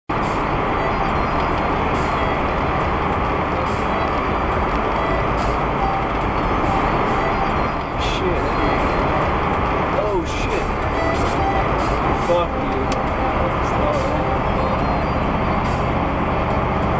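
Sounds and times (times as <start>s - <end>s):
car road and engine noise: 0.1s - 16.9s.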